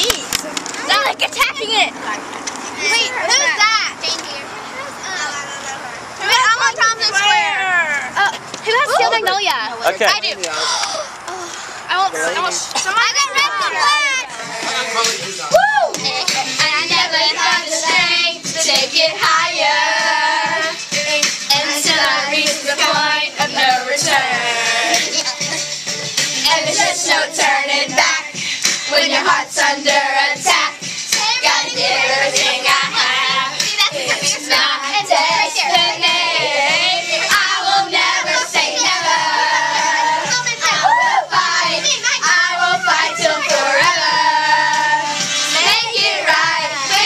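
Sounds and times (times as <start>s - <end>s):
pop song with steady beat: 12.5s - 47.0s
girls singing together: 12.7s - 47.0s.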